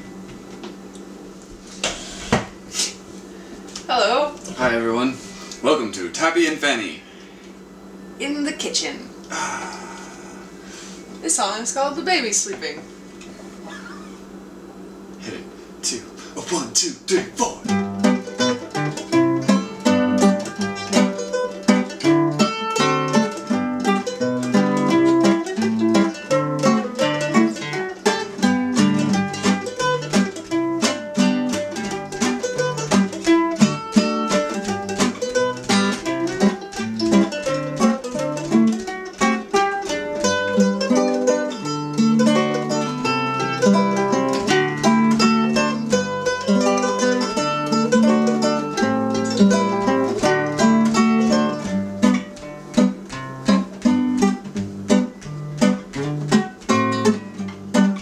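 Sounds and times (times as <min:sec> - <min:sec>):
acoustic guitar accompaniment: 0:15.2 - 0:58.0
mandolin picking folk tune: 0:17.4 - 0:58.0.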